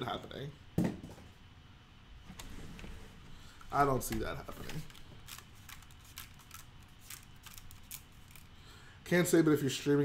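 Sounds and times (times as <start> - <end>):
plastic pieces clicking and rattling: 4.1 - 8.5.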